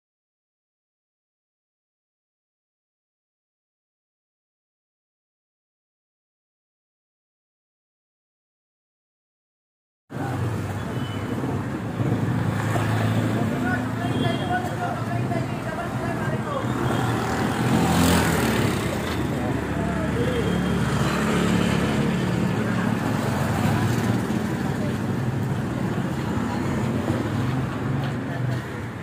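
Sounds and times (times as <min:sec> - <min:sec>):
vehicle passing loudly: 0:16.6 - 0:28.0.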